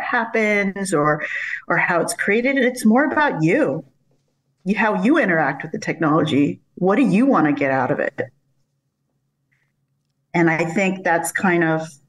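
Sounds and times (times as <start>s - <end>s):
woman speaking: 0.0s - 3.9s, 4.7s - 8.3s, 10.4s - 12.0s.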